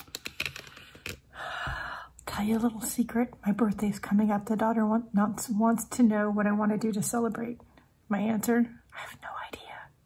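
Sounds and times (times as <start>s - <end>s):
breathy sigh: 1.3s - 2.2s.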